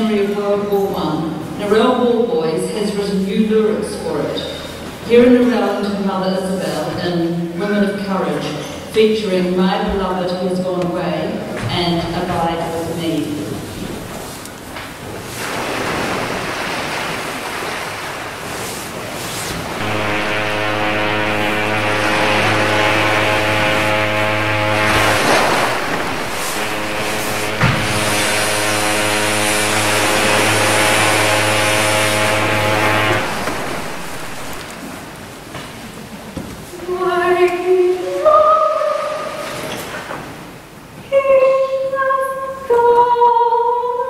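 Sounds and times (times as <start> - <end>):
ship's horn blasts: 19.6 - 34.9.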